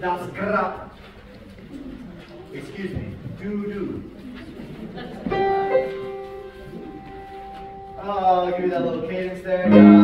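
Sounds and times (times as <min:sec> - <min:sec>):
held piano tones: 0:05.3 - 0:08.7, 0:09.6 - 0:10.0.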